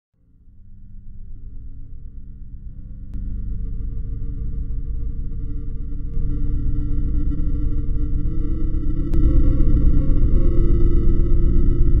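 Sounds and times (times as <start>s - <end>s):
dark electronic drone music: 0.5s - 12.0s.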